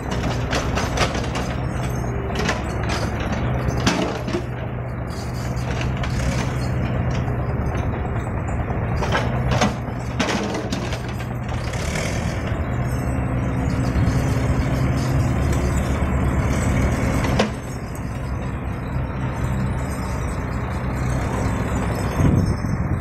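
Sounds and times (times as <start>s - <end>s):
excavator diesel engine running: 0.0s - 23.0s.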